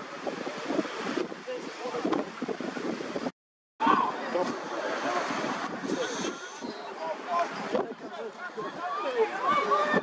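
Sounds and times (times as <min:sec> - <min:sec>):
wind buffeting microphone: 0:00.0 - 0:10.0
scattered voices of spectators: 0:03.8 - 0:10.0.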